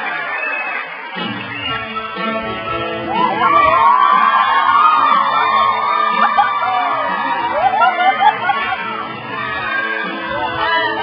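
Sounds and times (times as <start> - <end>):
crowd noise: 0.0 - 11.0
dance music with sliding melody: 1.2 - 11.0.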